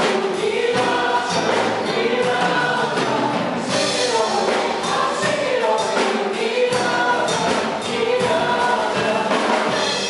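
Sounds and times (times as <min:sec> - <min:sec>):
women singing in harmony: 0:00.0 - 0:10.0.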